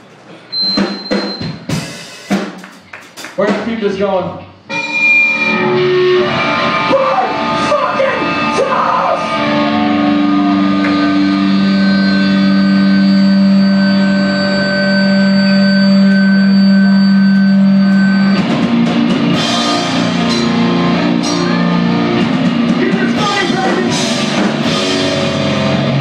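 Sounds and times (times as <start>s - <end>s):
hardcore band playing live: 0.5s - 26.0s
distorted electric guitar chord: 4.7s - 26.0s.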